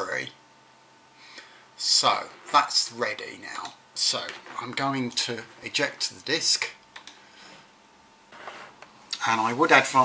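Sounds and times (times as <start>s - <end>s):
computer mouse clicks: 7.0s - 7.2s.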